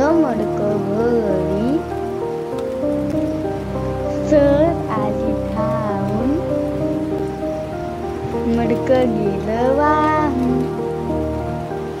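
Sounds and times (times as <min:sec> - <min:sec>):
instrumental music with held notes: 0:00.0 - 0:12.0
rain: 0:00.0 - 0:12.0.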